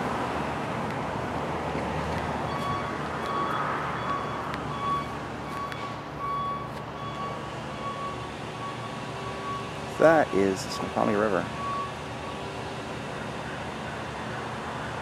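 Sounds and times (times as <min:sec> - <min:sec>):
road traffic noise: 0:00.0 - 0:15.0
vehicle reversing alarm beeps: 0:02.4 - 0:12.6.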